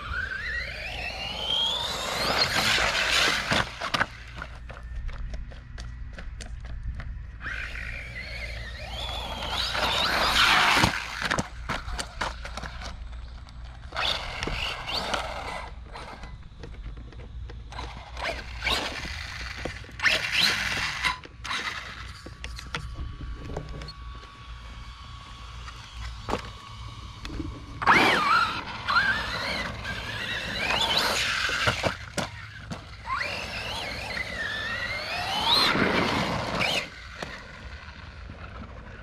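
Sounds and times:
rc truck electric motor whining: 0:00.0 - 0:04.6, 0:07.4 - 0:39.0.

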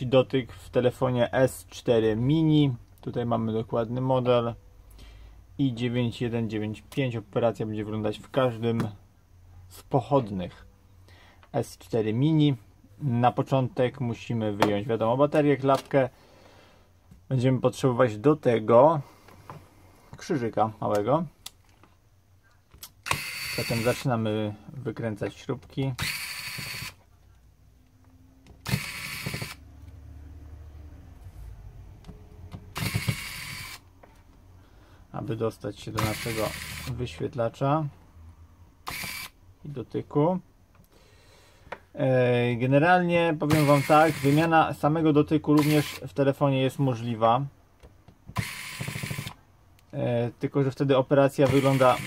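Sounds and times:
small electric screwdriver running: 0:23.0 - 0:24.0, 0:26.0 - 0:27.0, 0:28.6 - 0:29.6, 0:32.7 - 0:33.9, 0:36.0 - 0:37.0, 0:38.8 - 0:39.4, 0:43.5 - 0:44.5, 0:45.6 - 0:46.0, 0:48.4 - 0:49.4, 0:51.4 - 0:52.0.

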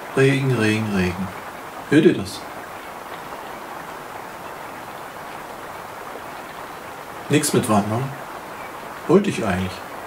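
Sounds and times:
rain falling: 0:00.0 - 0:10.0.

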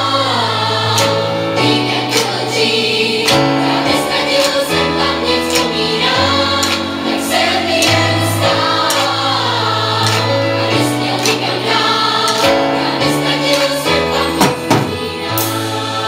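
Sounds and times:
choir-like singing over chords: 0:00.0 - 0:16.0
drum and cymbal hits: 0:14.4 - 0:15.9.

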